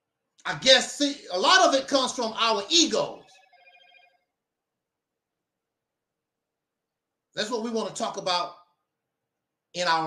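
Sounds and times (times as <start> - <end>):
faint electronic warbling tone: 3.0 - 4.2.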